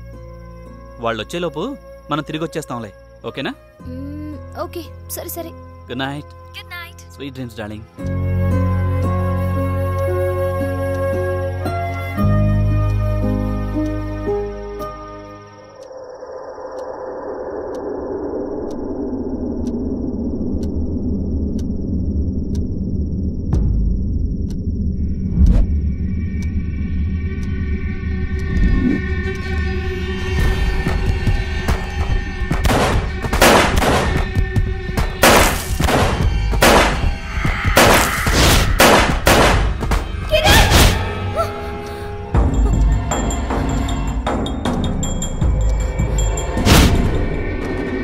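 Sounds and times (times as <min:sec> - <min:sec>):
soft music: 0:00.0 - 0:15.9, 0:40.0 - 0:46.6
dark film music: 0:00.0 - 0:48.0
low rumbling drone: 0:14.5 - 0:48.0
steady high whine: 0:15.4 - 0:40.2
clock ticking: 0:15.6 - 0:16.9, 0:20.5 - 0:20.8, 0:42.4 - 0:46.4
loud crashing hits: 0:35.2 - 0:41.1.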